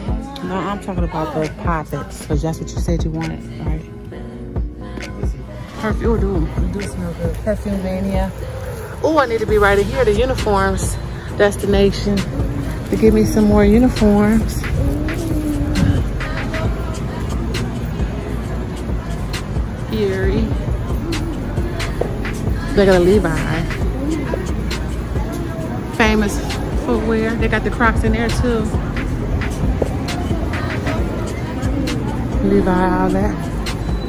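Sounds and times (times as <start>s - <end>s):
low outdoor rumble: 1.0s - 33.6s.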